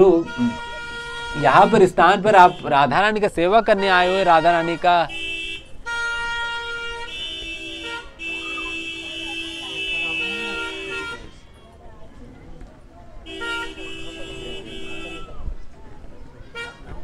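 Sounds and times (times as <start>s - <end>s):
vehicle horn honking: 0.0s - 3.0s, 3.7s - 11.9s, 13.2s - 15.4s, 16.5s - 16.9s
faint murmuring voices: 0.0s - 17.0s.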